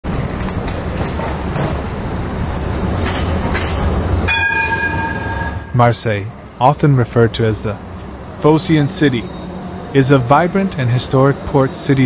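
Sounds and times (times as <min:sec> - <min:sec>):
tram passing: 0:00.0 - 0:12.0
steady high tone: 0:04.2 - 0:06.8.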